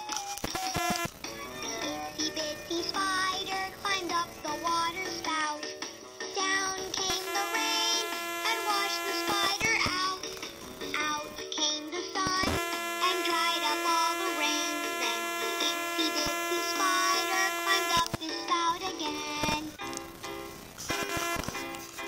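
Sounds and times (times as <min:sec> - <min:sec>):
toy speaker playing children's song: 0:00.0 - 0:22.0.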